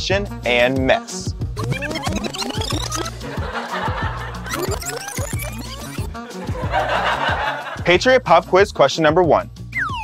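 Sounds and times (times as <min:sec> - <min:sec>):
upbeat music with bass line: 0:00.0 - 0:10.0
people laughing: 0:02.0 - 0:08.0.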